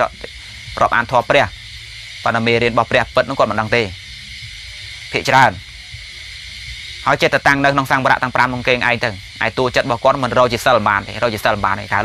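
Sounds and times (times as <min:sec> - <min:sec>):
man preaching: 0:00.0 - 0:01.5, 0:02.3 - 0:04.0, 0:05.1 - 0:05.6, 0:07.0 - 0:12.0
recording hiss: 0:00.0 - 0:12.0.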